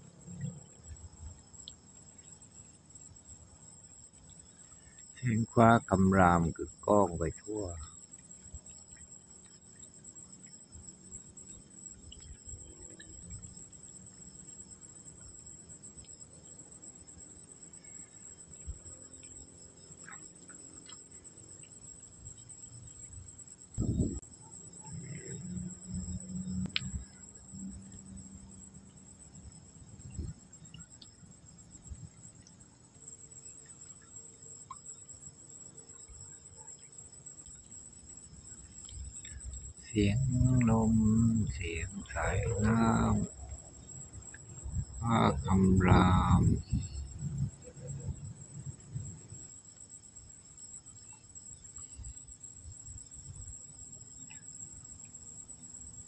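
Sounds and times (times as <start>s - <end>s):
crickets chirring: 0.0s - 56.0s
brief low hum: 23.8s - 24.2s, 39.9s - 43.3s, 45.0s - 48.2s.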